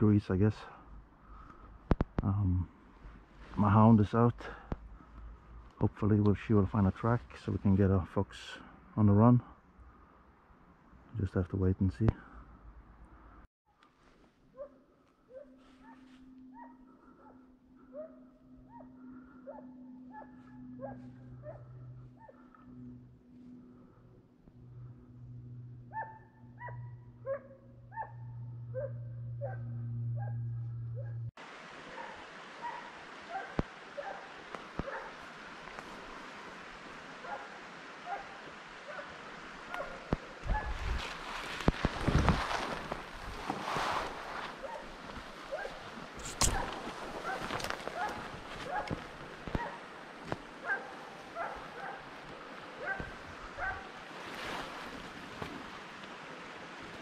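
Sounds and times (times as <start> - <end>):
distant hound baying: 14.6 - 23.1, 25.8 - 31.3, 31.9 - 35.2, 46.5 - 49.0, 49.6 - 49.8, 50.6 - 52.1, 52.8 - 54.0
low steady hum: 14.8 - 31.6.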